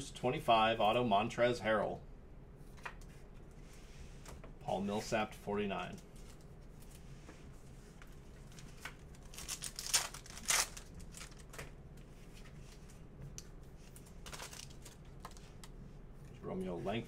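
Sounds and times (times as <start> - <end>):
cards rustling: 8.0 - 13.0, 13.8 - 15.7
wrapper crinkling and tearing: 8.5 - 11.6, 14.0 - 15.4.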